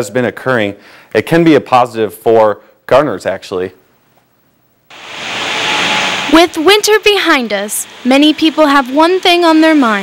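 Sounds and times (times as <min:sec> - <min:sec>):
steady rushing noise: 0:04.9 - 0:09.0.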